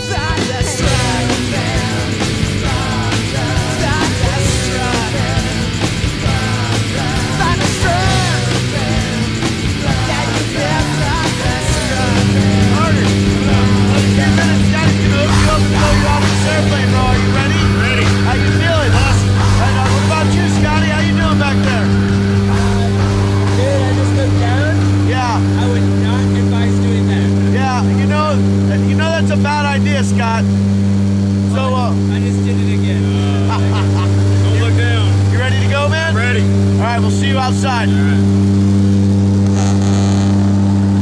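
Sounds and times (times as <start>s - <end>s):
propeller plane engine drone: 0.0s - 41.0s
raised voices: 0.0s - 41.0s.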